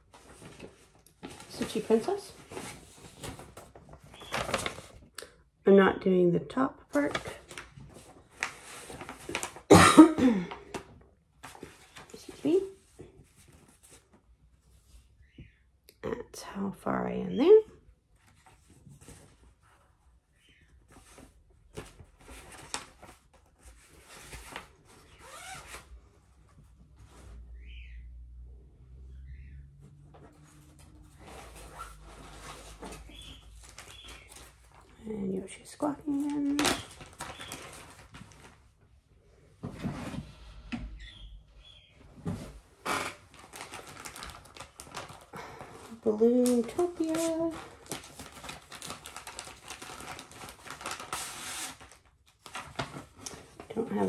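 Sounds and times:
faint high bird chirps: 27.5s - 28.2s, 33.1s - 34.5s, 40.9s - 42.0s.

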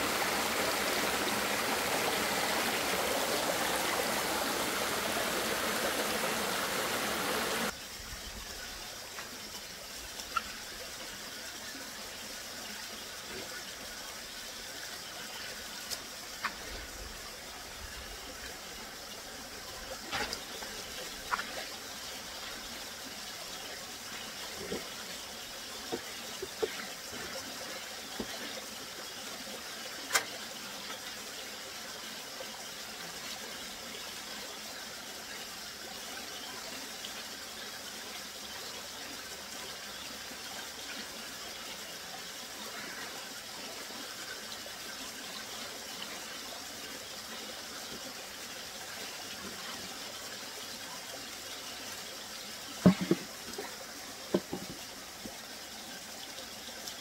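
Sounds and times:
stream running over rocks: 0.0s - 57.0s.

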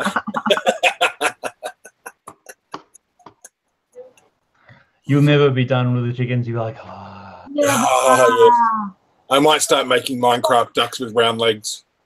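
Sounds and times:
man laughing heartily: 0.0s - 3.5s.

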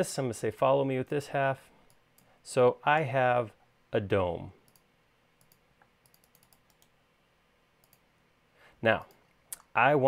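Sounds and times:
computer mouse clicks: 1.8s - 2.3s, 4.6s - 7.0s, 7.8s - 8.1s.

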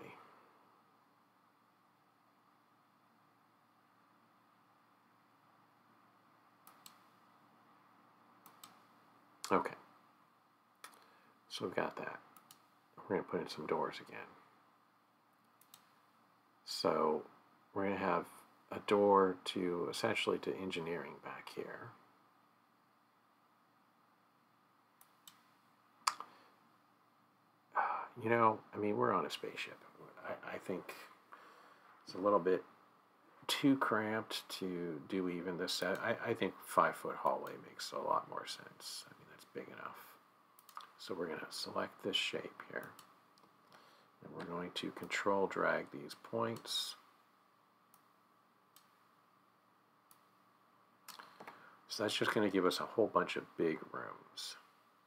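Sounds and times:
computer mouse clicks: 6.6s - 7.1s, 8.4s - 8.9s, 12.4s - 12.7s, 15.5s - 16.0s, 40.6s - 41.0s.

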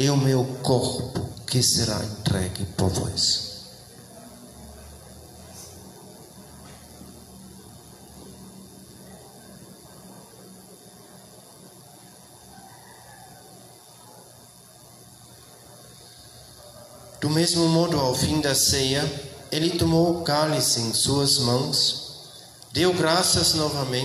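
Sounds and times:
room tone hiss: 0.0s - 24.0s.

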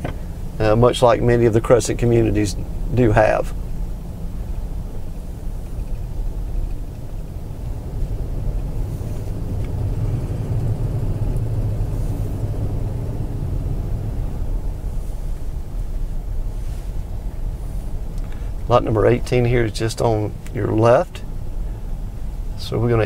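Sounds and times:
car engine and road rumble: 0.0s - 23.0s.

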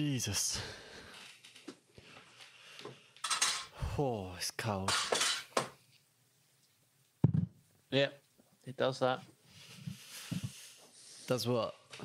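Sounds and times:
dishes and cutlery clattering: 3.2s - 3.7s, 4.9s - 5.7s.

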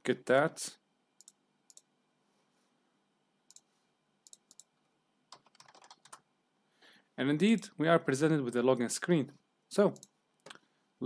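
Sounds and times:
keyboard typing and clicks: 3.5s - 4.7s, 5.3s - 6.2s.

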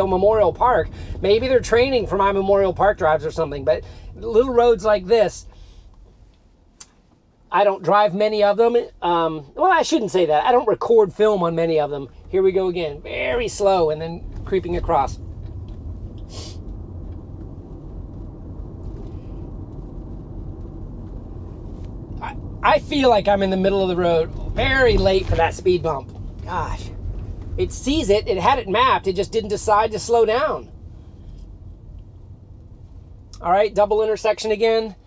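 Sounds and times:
road and tyre rumble in car cabin: 0.0s - 35.0s
short hiss: 16.2s - 16.7s.

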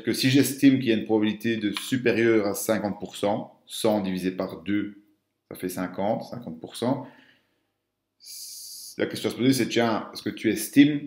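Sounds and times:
man speaking: 0.0s - 7.2s, 8.2s - 11.0s
man's sharp intake of breath: 7.0s - 7.6s.

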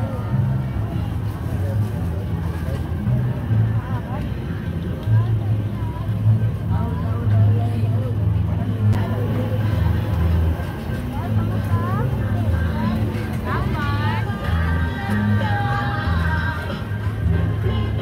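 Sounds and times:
people talking: 0.0s - 18.0s.

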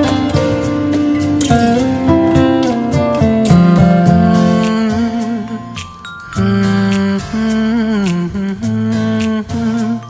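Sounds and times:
soft backing music: 0.0s - 10.0s
person humming a slow melody: 3.5s - 10.0s.

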